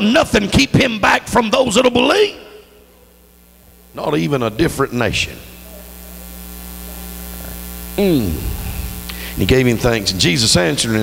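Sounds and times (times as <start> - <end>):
electrical mains hum: 0.0 - 11.0
microphone hiss: 0.0 - 11.0.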